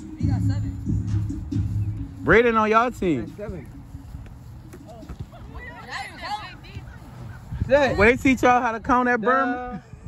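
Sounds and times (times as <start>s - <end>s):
players talking and calling out: 4.6s - 9.8s.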